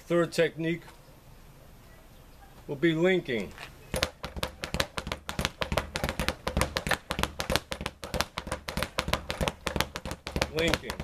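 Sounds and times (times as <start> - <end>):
speed bag being punched: 3.9 - 11.0.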